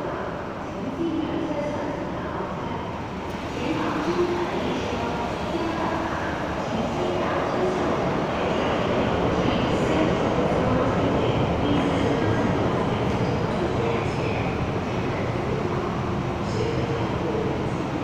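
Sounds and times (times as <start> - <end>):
train rumbling into station: 0.0 - 18.0.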